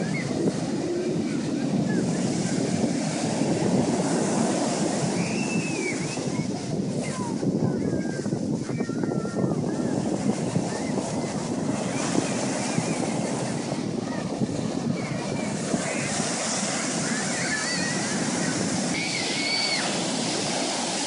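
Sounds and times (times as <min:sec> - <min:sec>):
ocean waves breaking on beach: 0:00.0 - 0:21.0.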